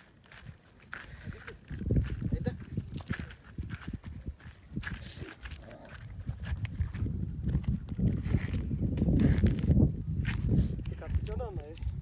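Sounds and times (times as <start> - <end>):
wind buffeting microphone: 0.2 - 12.0.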